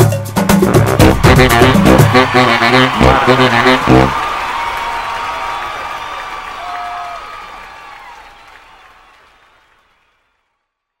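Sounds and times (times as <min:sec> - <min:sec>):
applause: 0:01.1 - 0:11.0.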